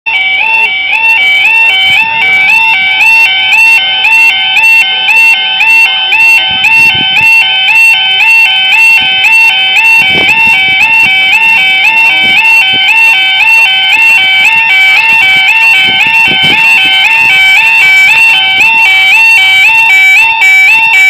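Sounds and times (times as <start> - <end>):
level crossing alarm warbling: 0.1 - 21.0.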